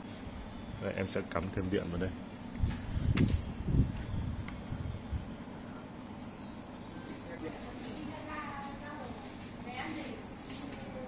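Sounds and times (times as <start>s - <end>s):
steady low background hum: 0.0s - 11.0s.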